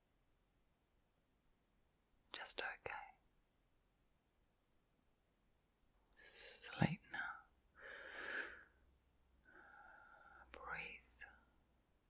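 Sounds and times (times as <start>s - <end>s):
woman whispering: 2.3s - 3.2s, 6.2s - 7.5s, 10.4s - 11.5s.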